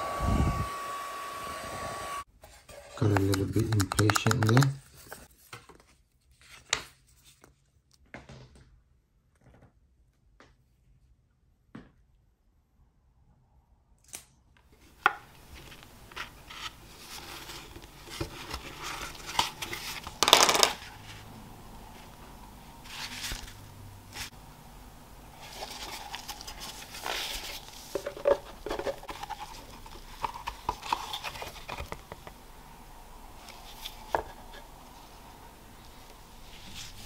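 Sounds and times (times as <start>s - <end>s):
card lining scraping and rustling: 2.4s - 7.5s, 14.8s - 21.3s, 22.8s - 24.4s, 25.3s - 32.4s, 33.4s - 35.0s, 36.0s - 37.0s.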